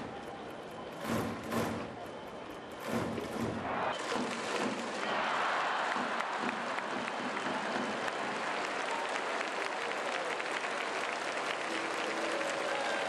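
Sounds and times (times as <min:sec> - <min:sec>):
stadium crowd applauding: 0:00.0 - 0:13.0.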